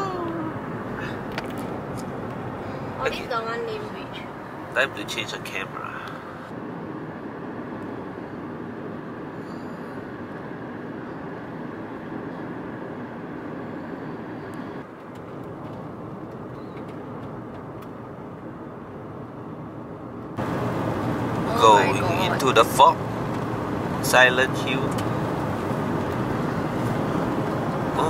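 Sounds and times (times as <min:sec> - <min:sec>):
car road and engine rumble: 0:00.0 - 0:28.0.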